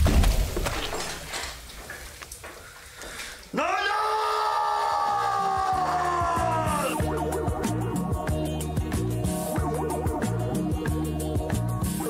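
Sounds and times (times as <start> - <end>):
man screaming: 3.5 - 7.1
music with low bass: 6.4 - 12.0.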